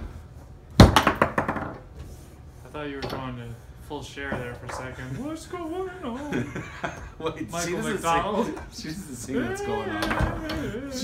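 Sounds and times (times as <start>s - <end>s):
ball knocking: 0.8s - 1.9s
foosball figure striking ball: 0.8s - 1.9s.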